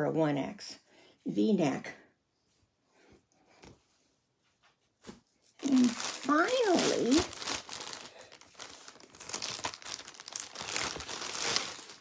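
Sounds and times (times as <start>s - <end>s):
packaging crinkling: 5.6s - 12.0s.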